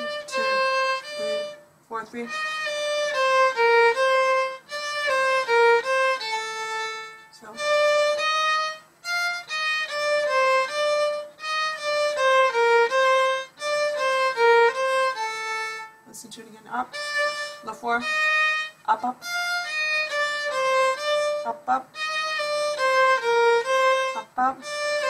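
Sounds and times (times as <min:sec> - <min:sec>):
solo violin playing a minuet: 0:00.0 - 0:25.0.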